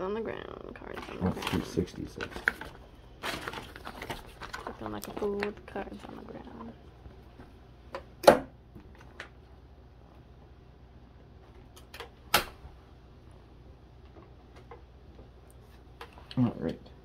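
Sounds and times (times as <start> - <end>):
plastic binder pages flipping: 1.0 - 5.5.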